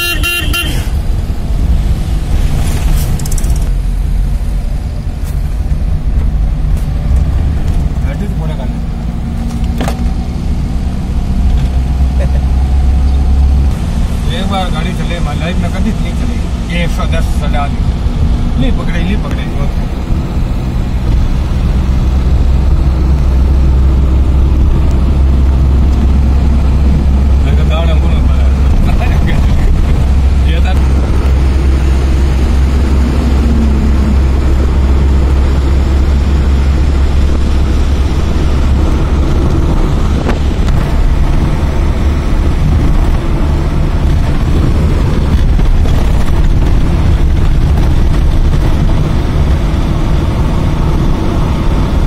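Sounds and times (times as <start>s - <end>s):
vehicle rumble with road and wind: 0.0s - 52.0s.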